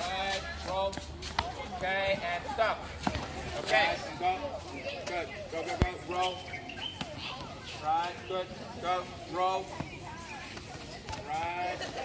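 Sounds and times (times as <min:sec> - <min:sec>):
ball hitting paved ground: 0:00.8 - 0:02.2, 0:02.8 - 0:04.0.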